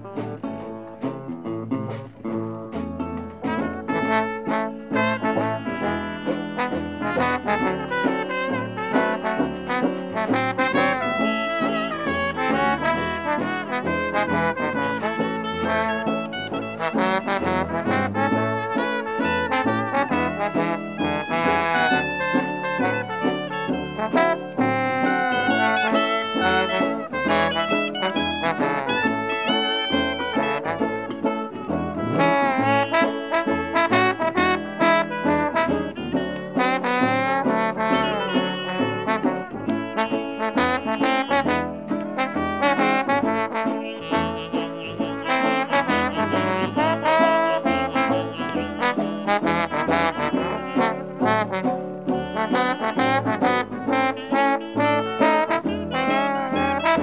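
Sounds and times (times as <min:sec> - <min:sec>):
jazz band playing: 0:00.0 - 0:57.0.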